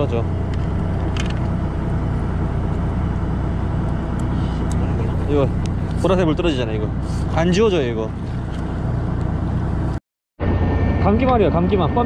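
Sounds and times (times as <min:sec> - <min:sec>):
boat engine humming: 0:00.0 - 0:10.0.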